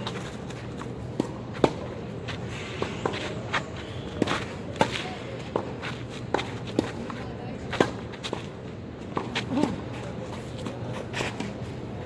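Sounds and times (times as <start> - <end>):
racket striking tennis ball: 0.0 - 2.0, 4.2 - 8.5
tennis ball bouncing: 0.0 - 2.0, 4.2 - 9.5
shoes shuffling on clay: 0.0 - 12.0.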